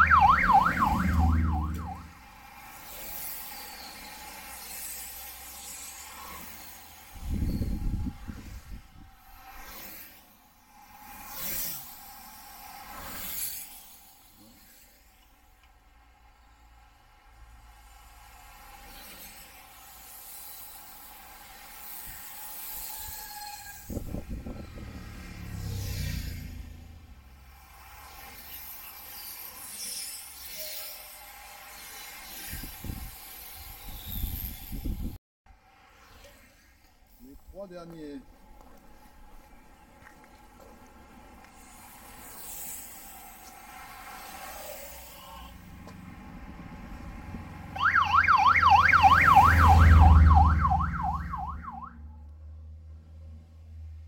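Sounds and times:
bicycle tyres whooshing on asphalt: 0.0s - 15.6s, 17.5s - 51.9s
wind buffeting microphone: 7.2s - 9.1s, 23.9s - 25.0s, 33.8s - 35.2s.

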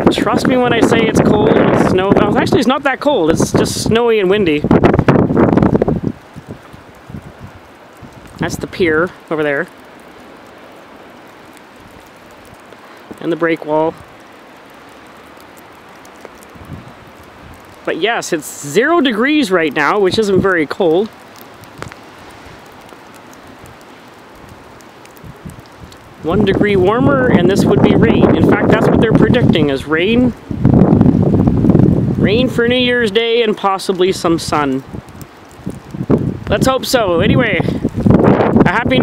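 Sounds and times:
wind buffeting microphone: 0.0s - 9.1s, 11.8s - 18.2s, 19.8s - 33.4s, 34.1s - 39.0s.

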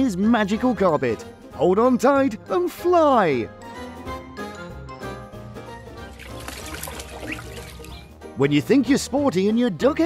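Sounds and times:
background music: 0.0s - 10.0s
duck splashing water: 6.0s - 8.1s.

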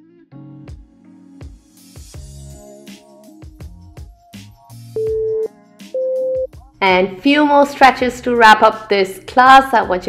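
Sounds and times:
soft background music: 0.4s - 10.0s
electronic timer beeps: 5.0s - 6.5s.

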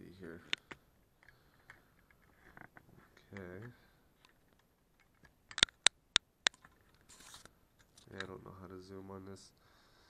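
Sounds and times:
soft rustle: 6.6s - 9.4s.

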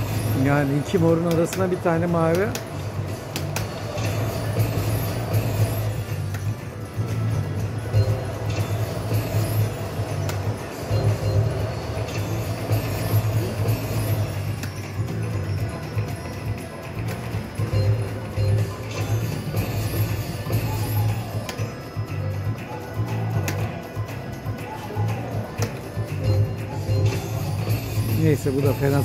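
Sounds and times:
slot machine electronic music: 0.0s - 29.0s.

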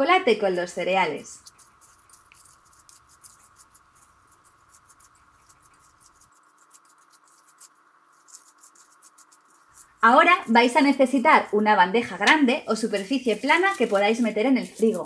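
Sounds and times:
spatula clicking and scraping in bowl: 0.5s - 15.0s.

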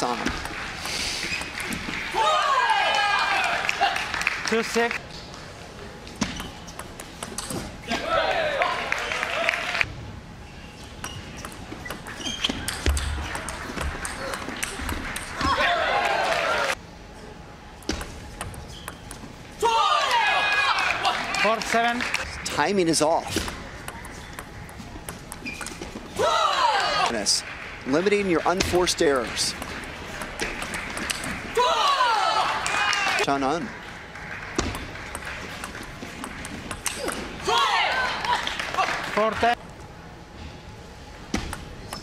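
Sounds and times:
table tennis ball clicks: 6.2s - 7.6s, 29.5s - 31.4s, 34.6s - 37.3s.

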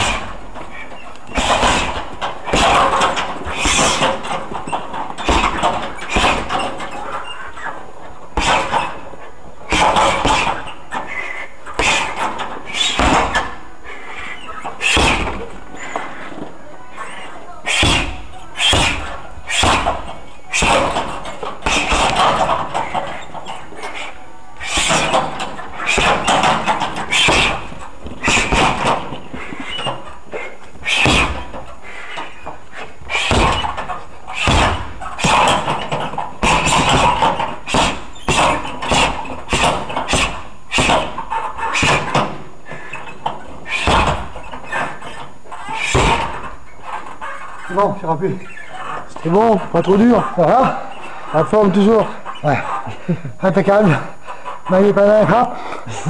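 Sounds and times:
punches and kicks on heavy bag: 0.0s - 0.4s, 1.3s - 7.0s, 8.3s - 9.0s, 9.7s - 13.6s, 14.8s - 15.5s, 17.7s - 23.4s, 24.6s - 31.6s, 33.0s - 42.4s, 43.7s - 45.0s, 45.8s - 46.5s.

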